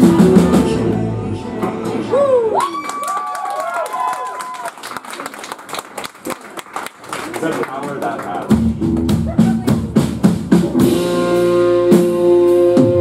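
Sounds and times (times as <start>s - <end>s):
rock band playing: 0.0s - 2.0s, 8.4s - 13.0s
audience cheering and whooping: 2.0s - 5.4s
audience clapping: 2.6s - 9.6s.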